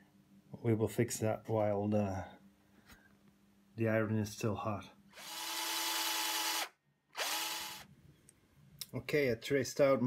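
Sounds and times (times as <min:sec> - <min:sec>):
small electric motor whirring: 0:05.2 - 0:07.9.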